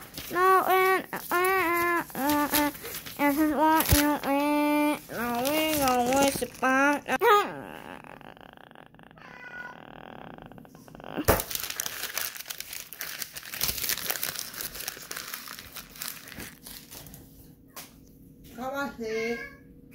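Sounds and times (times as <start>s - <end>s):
paper crumpling: 0.0s - 7.2s, 11.2s - 17.4s.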